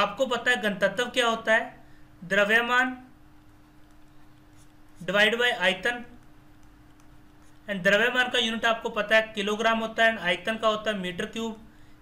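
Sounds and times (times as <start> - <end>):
thin steady hum: 0.0 - 12.0
stylus scratching on tablet: 3.4 - 8.4.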